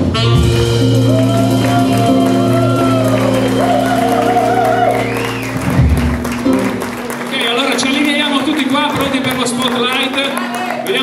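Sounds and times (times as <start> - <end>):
swing jazz band: 0.0 - 6.8.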